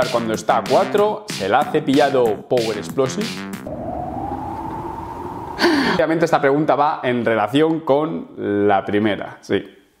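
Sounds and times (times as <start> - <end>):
rising electronic tone: 3.6 - 5.7
low rumble: 3.6 - 6.2
noisy burst with falling pitch: 3.6 - 6.6.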